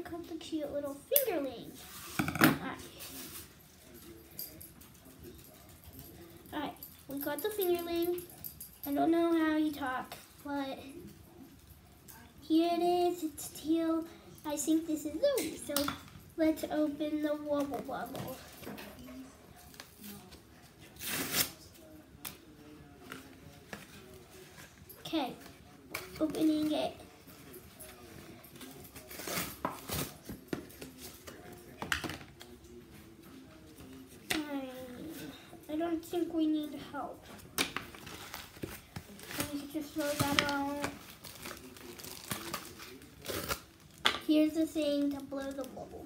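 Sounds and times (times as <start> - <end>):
child's voice: 12.4 - 18.4, 34.3 - 37.2, 39.4 - 41.0, 44.3 - 46.0
plastic packaging crinkling and tearing: 28.7 - 31.0, 37.6 - 44.1.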